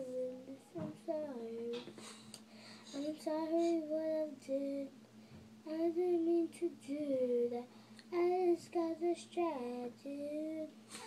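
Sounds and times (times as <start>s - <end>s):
girl singing: 0.0s - 2.0s, 2.8s - 5.0s, 5.6s - 11.0s.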